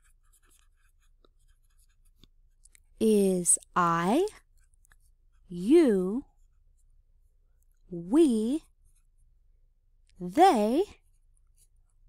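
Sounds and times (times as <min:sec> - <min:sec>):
pen scratching on paper: 0:00.0 - 0:02.8.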